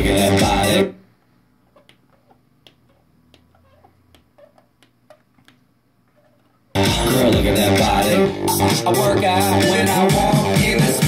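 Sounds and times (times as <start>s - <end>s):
faint squeak: 2.8s - 5.2s.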